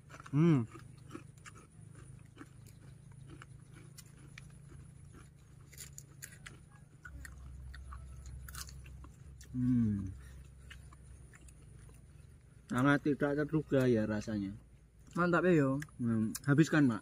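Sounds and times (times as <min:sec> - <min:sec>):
chewing crispy fried food: 0:00.0 - 0:17.0
low steady rumble: 0:00.0 - 0:17.0.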